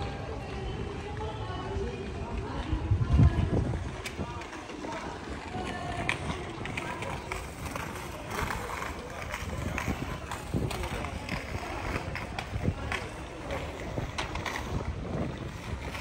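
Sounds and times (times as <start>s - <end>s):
passers-by chatting: 0.0s - 16.0s.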